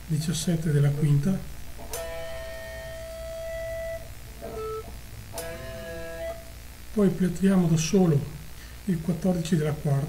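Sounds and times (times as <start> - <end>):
electric guitar notes: 1.8 - 6.6.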